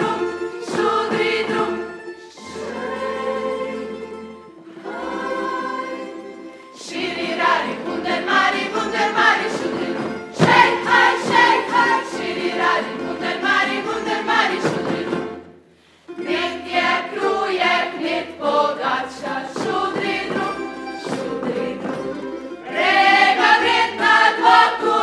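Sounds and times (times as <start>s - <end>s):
group singing in unison: 0.0s - 15.5s, 16.2s - 25.0s
string band playing: 0.0s - 25.0s.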